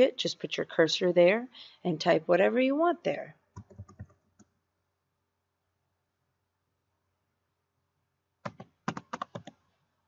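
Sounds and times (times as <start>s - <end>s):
computer keyboard key clicks: 8.4s - 9.6s.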